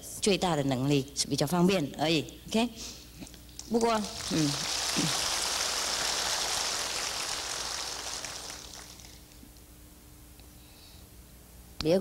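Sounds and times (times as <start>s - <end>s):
audience applauding: 3.8s - 9.4s.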